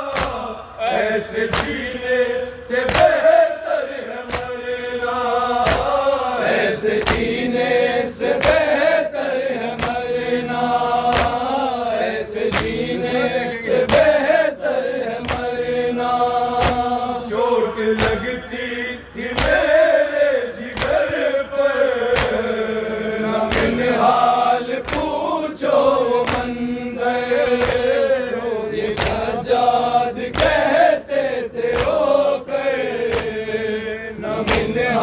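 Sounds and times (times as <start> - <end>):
men chanting in chorus: 0.0 - 35.0.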